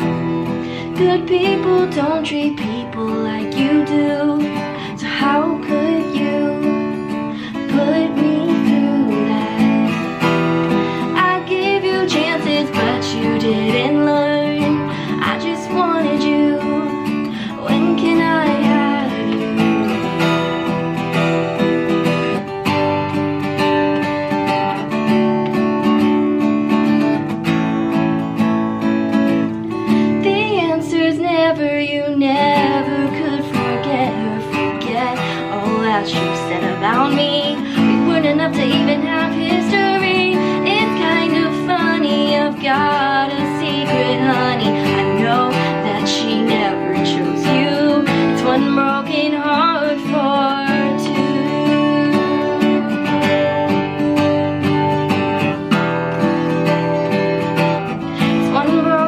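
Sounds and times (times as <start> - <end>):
woman singing: 0.0 - 27.2, 29.2 - 59.0
acoustic guitar strummed: 0.0 - 59.0.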